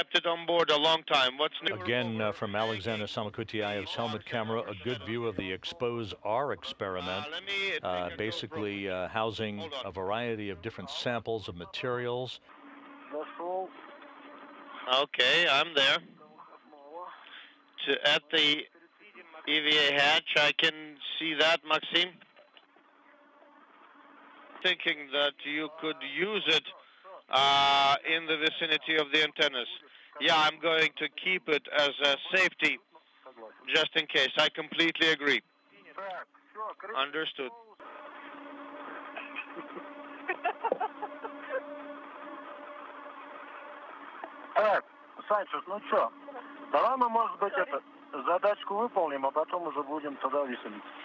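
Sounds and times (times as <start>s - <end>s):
burst of speech: 0.0s - 12.4s
radio channel hiss: 0.0s - 22.2s, 24.0s - 51.0s
weak low hum: 0.6s - 16.5s, 36.5s - 51.0s.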